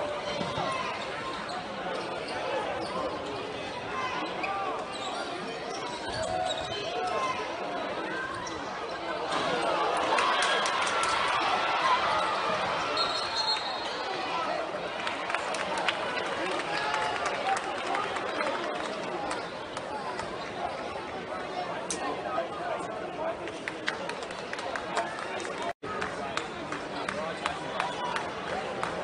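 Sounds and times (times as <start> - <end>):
crowd and players chattering: 0.0 - 29.0.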